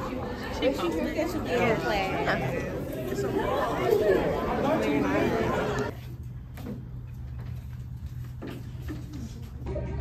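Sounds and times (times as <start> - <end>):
chatter of many voices: 0.0 - 6.0.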